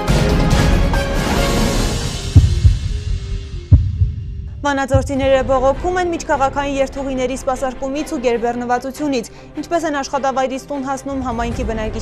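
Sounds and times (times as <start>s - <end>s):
news intro theme music: 0.0s - 9.5s
deep bass hits: 2.0s - 6.3s
held low tone: 2.4s - 5.8s.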